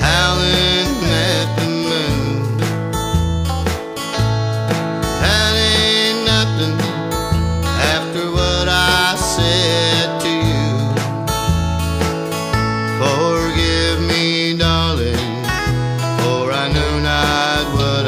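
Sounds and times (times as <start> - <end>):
country song with guitar: 0.0 - 18.0.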